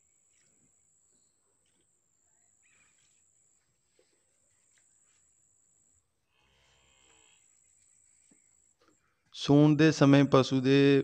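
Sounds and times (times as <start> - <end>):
faint cow moo: 6.4 - 7.5.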